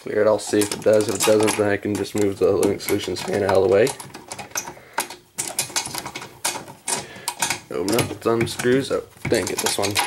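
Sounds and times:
metal door fastener clicking: 0.4 - 10.0.

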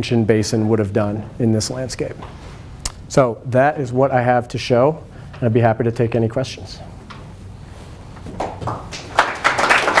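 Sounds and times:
audience applauding: 8.4 - 10.0.

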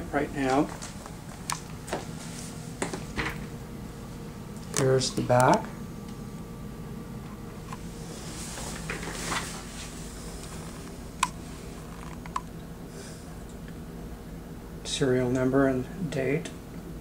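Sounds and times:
console humming: 0.0 - 17.0.

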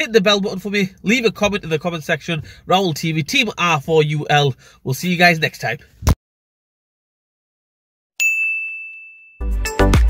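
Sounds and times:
bell ding: 8.2 - 9.7
music with heavy beat: 9.4 - 10.0.

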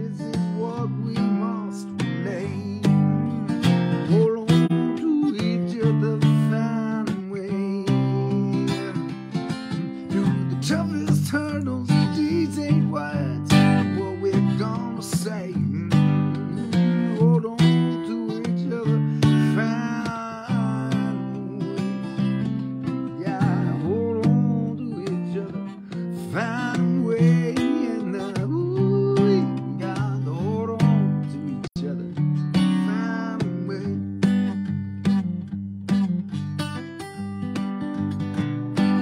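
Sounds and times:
man singing: 0.0 - 34.7, 38.7 - 39.0
acoustic guitar strummed: 0.0 - 39.0.

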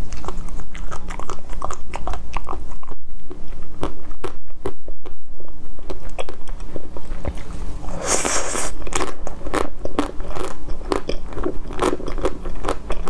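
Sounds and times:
crunching and chewing: 0.0 - 13.0.

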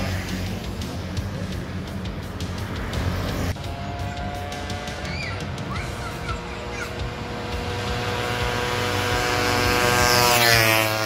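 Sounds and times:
two-stroke motorcycle engine buzzing: 0.0 - 11.0.

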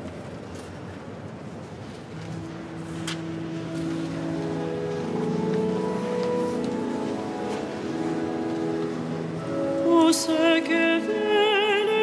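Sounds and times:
pipe organ chords: 2.2 - 11.3.

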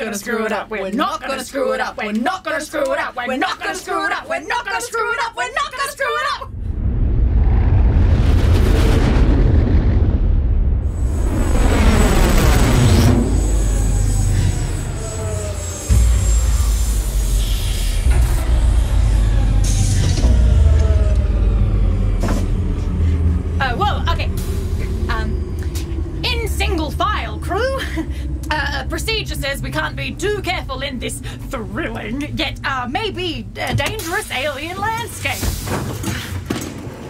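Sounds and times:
falling sweeping tones: 6.4 - 35.2
low spaceship rumble: 6.5 - 35.4.

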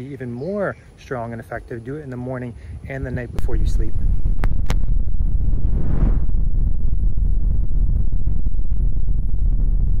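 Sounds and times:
low rumbling drone: 3.9 - 10.0.

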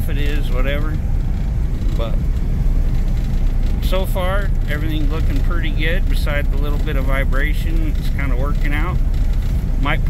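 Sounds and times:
car engine rumble: 0.0 - 10.0
gravel road noise: 0.0 - 10.0.

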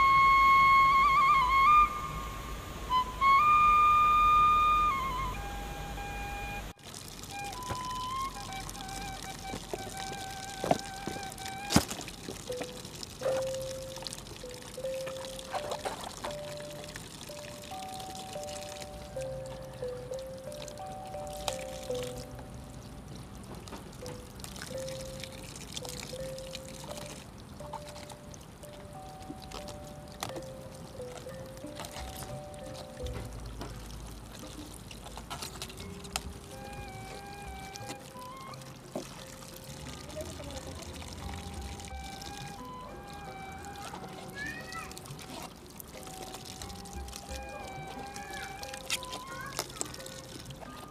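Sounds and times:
soft background music: 0.0 - 50.9
water pouring and splashing: 0.0 - 50.9.

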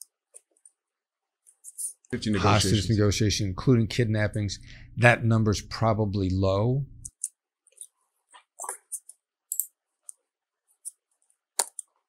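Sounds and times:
keyboard and mouse clicks: 11.6 - 12.0.

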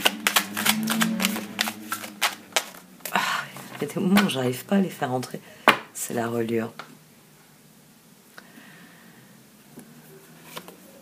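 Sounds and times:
cards being shuffled: 0.0 - 4.4.

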